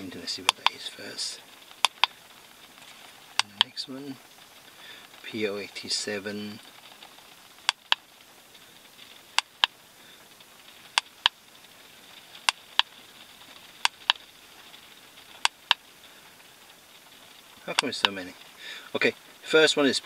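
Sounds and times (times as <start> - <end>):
sharp clicks in pairs: 1.8 - 2.1.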